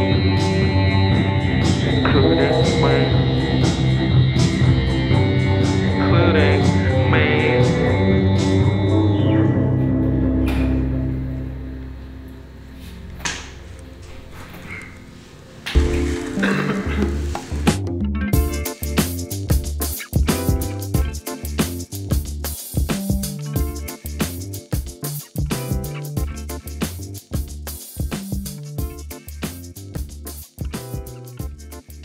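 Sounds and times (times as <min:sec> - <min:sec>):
post-punk rock song: 0:00.0 - 0:11.2
different music: 0:00.0 - 0:32.0.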